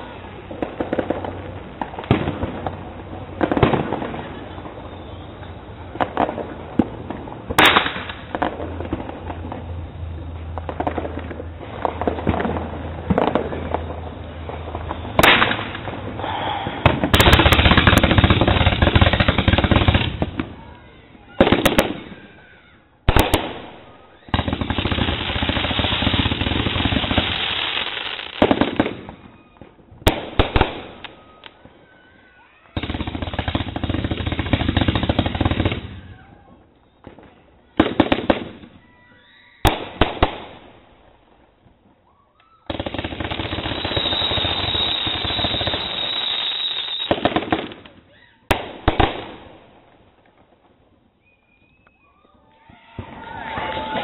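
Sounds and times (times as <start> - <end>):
rapid fireworks reports: 0.0 - 41.9, 42.6 - 50.7, 51.6 - 54.0
fireworks bangs: 0.0 - 54.0.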